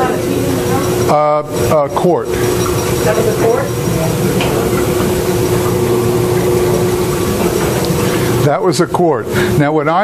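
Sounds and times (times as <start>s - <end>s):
freezer machine humming: 0.0s - 10.0s.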